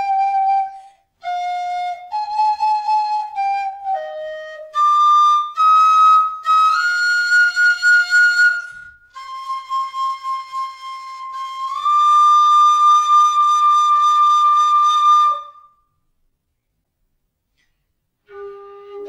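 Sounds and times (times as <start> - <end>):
tin whistle long notes: 0.0 - 15.8.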